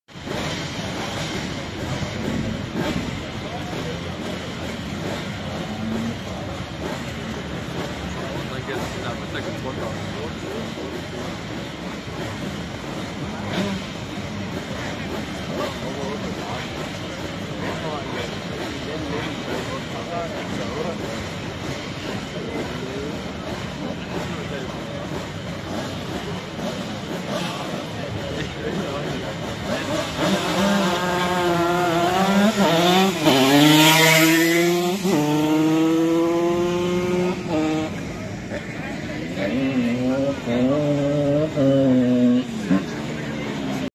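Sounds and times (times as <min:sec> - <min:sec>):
crowd babble: 0:00.1 - 0:43.9
two-stroke moped accelerating: 0:00.1 - 0:43.9.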